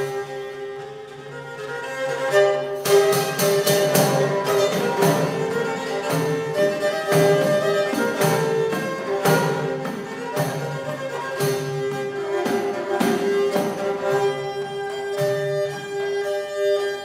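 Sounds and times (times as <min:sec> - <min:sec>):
bowed fiddle melody: 0:00.0 - 0:17.0
percussion beat: 0:02.6 - 0:16.8.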